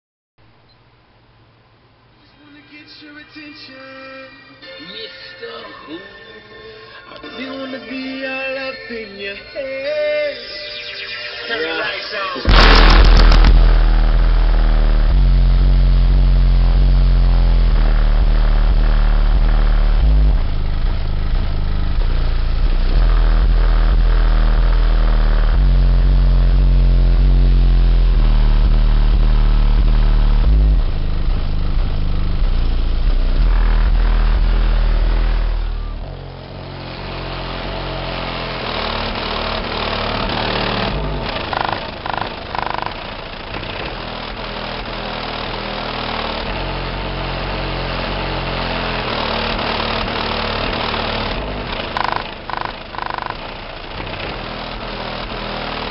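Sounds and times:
bass-heavy music from subwoofer: 11.5s - 55.9s.

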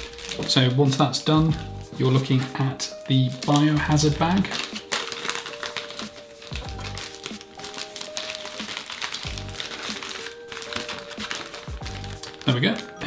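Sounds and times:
background music with slow beat: 0.0s - 13.0s
plastic bags crinkling: 0.0s - 13.0s.

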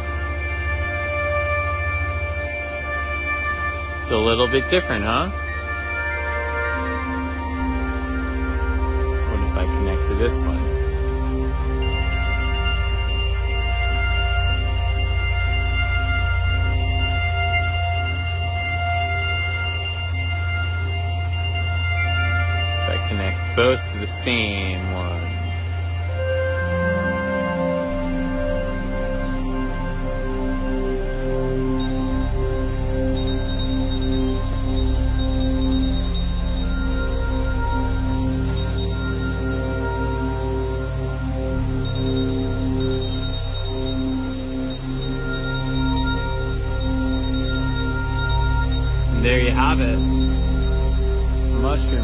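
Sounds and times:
synthesized ambient music: 0.0s - 52.0s.

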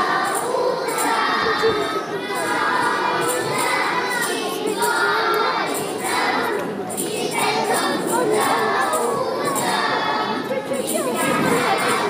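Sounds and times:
young children singing: 0.0s - 12.0s.

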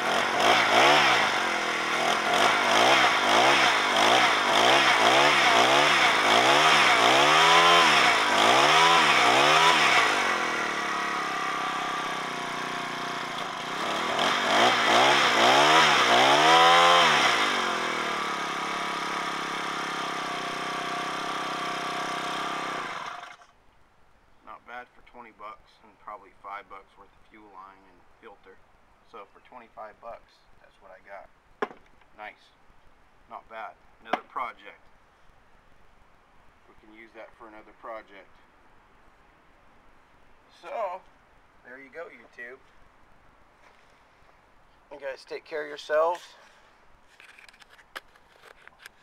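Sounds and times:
small engine revving and idling: 0.0s - 23.5s.

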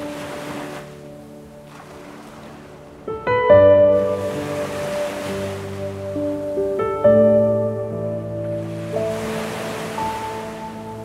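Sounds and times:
ocean surf: 0.0s - 11.0s
soft piano music: 0.0s - 11.0s.

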